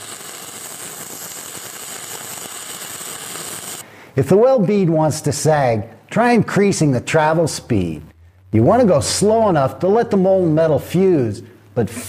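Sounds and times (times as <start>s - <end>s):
welding arc crackling sizzle: 0.0s - 3.8s.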